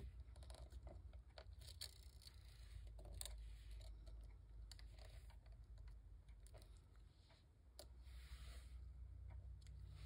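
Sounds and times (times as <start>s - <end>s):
low room hum: 0.0s - 10.0s
light ticks and scrapes: 0.2s - 10.0s.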